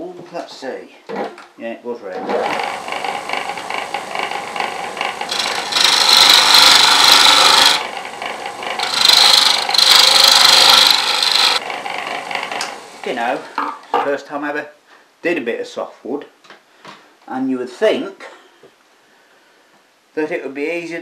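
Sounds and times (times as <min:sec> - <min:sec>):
chisel scraping spinning wood: 0:02.2 - 0:13.6
lathe motor humming: 0:02.5 - 0:13.4.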